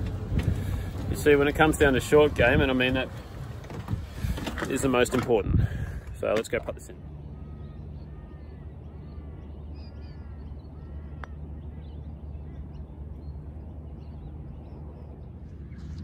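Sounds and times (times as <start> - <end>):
birds calling: 0.0 - 16.0
low background rumble: 0.0 - 16.0.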